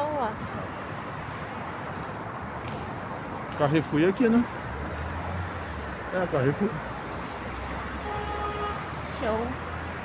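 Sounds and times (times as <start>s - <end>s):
road traffic noise: 0.0s - 10.0s
car horn: 8.0s - 9.0s.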